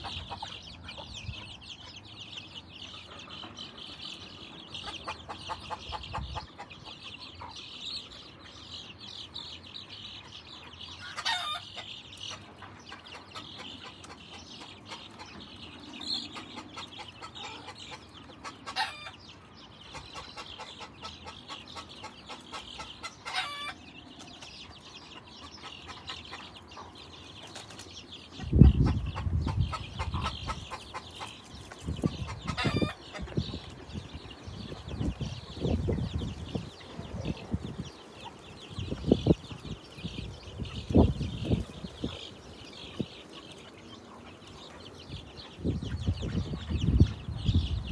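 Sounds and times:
chickens clucking and peeping: 0.0 - 47.9.

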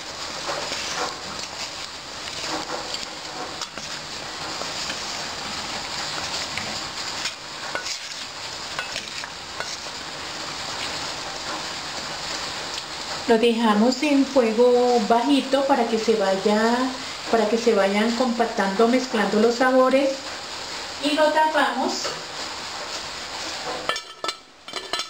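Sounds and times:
vegetables sizzling in oil: 0.0 - 25.0
wooden spoon scraping pot: 0.5 - 10.0.

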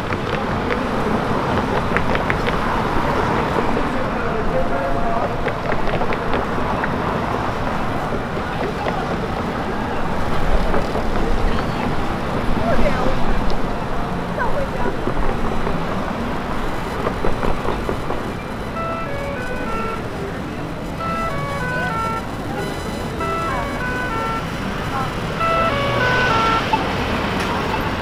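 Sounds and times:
pedestrians' voices: 0.0 - 28.0
traffic: 0.0 - 28.0
jingle-like tune: 18.8 - 20.0.

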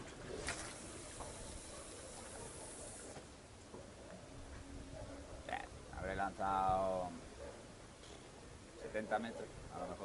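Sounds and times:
fishing line hissing off reel: 0.6 - 3.2.

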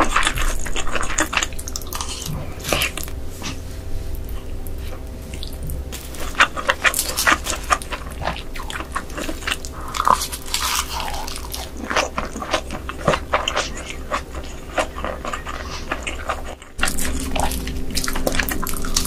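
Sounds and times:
chewing fried rice: 0.0 - 19.0
crisp crackles: 5.4 - 19.0.

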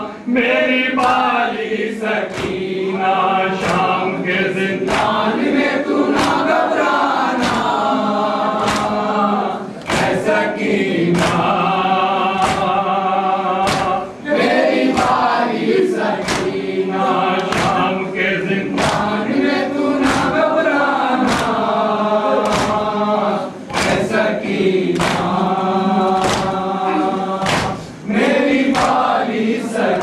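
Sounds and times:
crowd chanting a lament: 0.0 - 30.0.

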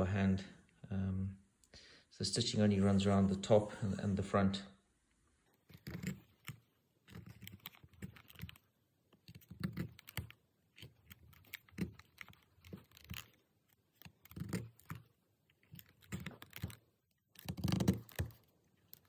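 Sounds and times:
awl scratching through leather: 5.6 - 19.0.

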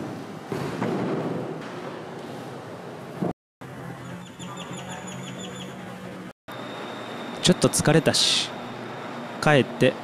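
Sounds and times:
small bird chirping: 4.0 - 5.8
steady low hum: 5.2 - 10.0.

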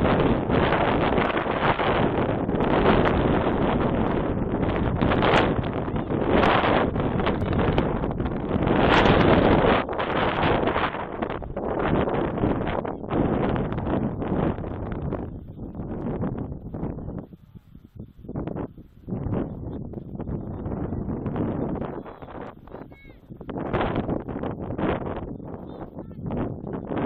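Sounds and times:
wind gusting across microphone: 0.0 - 27.0.

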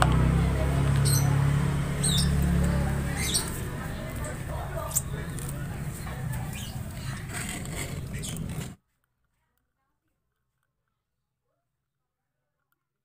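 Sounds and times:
faint voices: 0.0 - 8.8.

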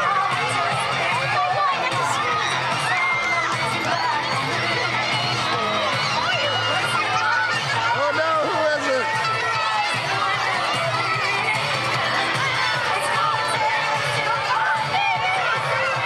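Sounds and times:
children shouting and cheering: 0.0 - 16.0
dance music through loudspeaker: 0.0 - 16.0.

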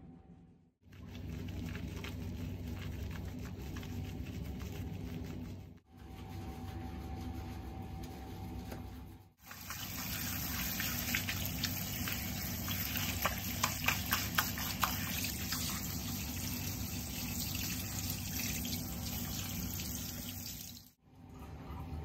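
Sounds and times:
tap water running: 9.4 - 21.0.

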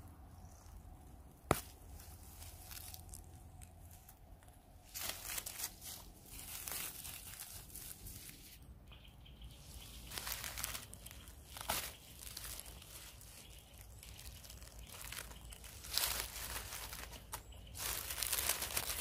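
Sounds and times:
dry leaves rustling and crackling: 0.4 - 19.0.

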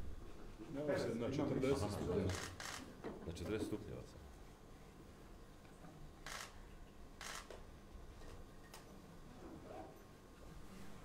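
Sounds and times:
camera shutter firing: 2.3 - 2.9, 6.2 - 6.6, 7.2 - 7.6.

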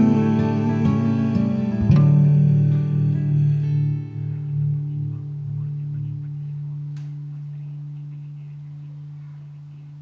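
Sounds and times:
acoustic guitar and bass chord ringing: 0.0 - 9.2.

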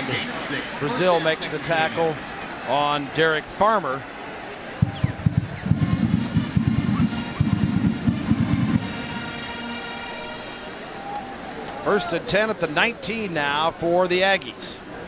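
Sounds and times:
rapid drum beats: 4.8 - 9.7.

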